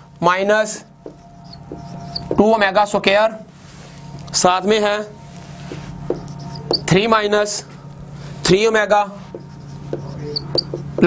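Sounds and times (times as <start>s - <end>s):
low steady hum: 0.0s - 11.0s
marker squeaking on a whiteboard: 0.9s - 2.5s, 5.6s - 7.2s, 9.1s - 11.0s.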